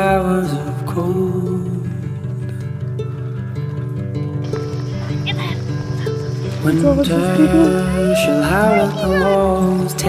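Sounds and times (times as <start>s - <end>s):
instrumental music: 2.2s - 10.0s
person singing: 6.6s - 10.0s
young goat bleating: 6.8s - 9.6s.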